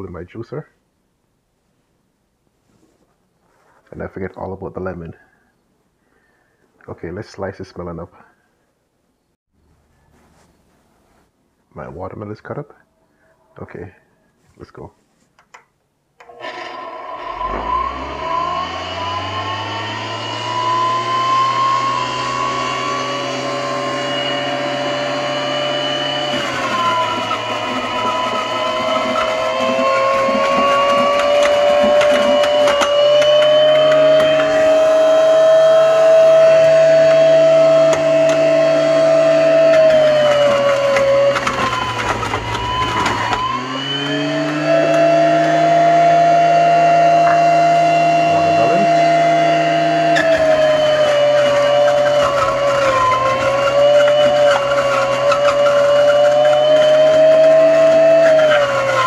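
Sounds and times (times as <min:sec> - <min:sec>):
juicer motor whining: 0:16.2 - 0:59.0
pulp crackling and grinding: 0:25.8 - 0:46.2, 0:48.2 - 0:59.0.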